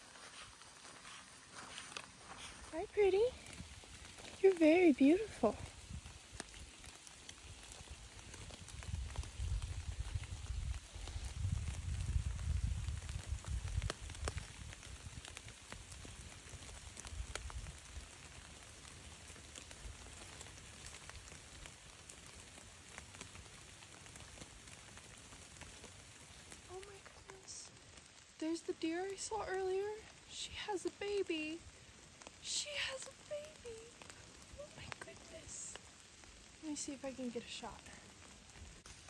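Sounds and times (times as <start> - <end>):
light rain pattering on leaves: 0.0 - 39.0.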